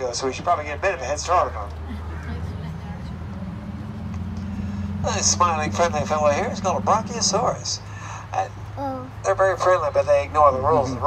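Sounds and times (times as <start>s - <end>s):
tram running with low hum: 0.0s - 11.0s.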